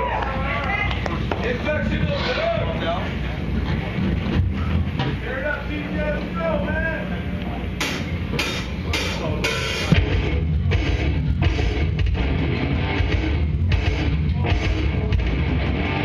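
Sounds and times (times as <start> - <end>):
metal band playing: 5.3 - 16.0
held low note: 5.8 - 12.2
cymbal hits counting in: 7.8 - 11.8.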